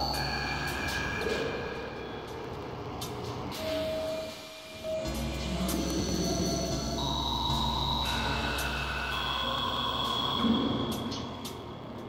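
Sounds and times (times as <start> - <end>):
ambient synthesizer tones: 0.0 - 12.0.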